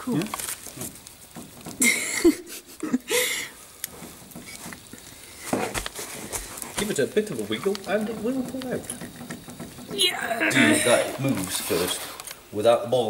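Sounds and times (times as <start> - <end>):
metallic scraping rasps: 3.8 - 12.4.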